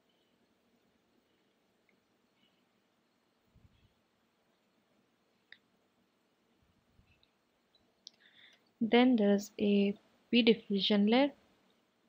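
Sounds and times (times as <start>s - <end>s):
person speaking: 8.8s - 11.4s.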